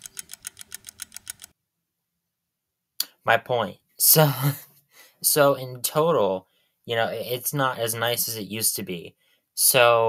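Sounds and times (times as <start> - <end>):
rapid clock ticking: 0.0 - 1.5.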